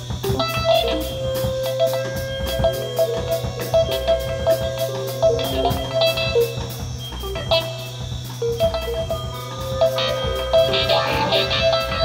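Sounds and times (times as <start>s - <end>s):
guitar notes: 0.0s - 12.0s
keyboard notes: 0.0s - 12.0s
steady low drone: 0.0s - 12.0s
ticking beat: 0.0s - 12.0s.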